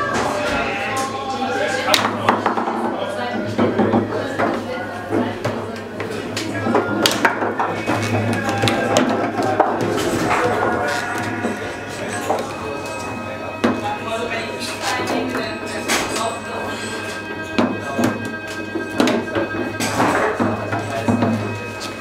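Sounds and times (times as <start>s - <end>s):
background music: 0.0s - 4.2s, 6.4s - 22.0s.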